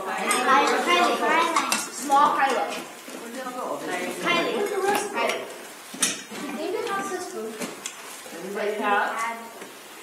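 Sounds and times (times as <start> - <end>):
children chattering: 0.0 - 9.6.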